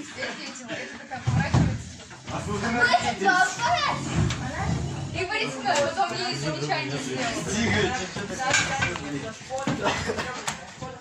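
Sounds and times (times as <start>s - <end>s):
boys talking and exclaiming: 0.0s - 11.0s.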